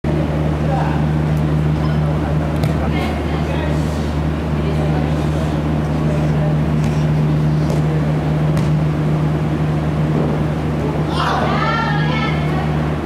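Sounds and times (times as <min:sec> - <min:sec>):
steady low hum: 0:00.0 - 0:13.0
ball being kicked: 0:02.6 - 0:02.9, 0:08.5 - 0:08.8.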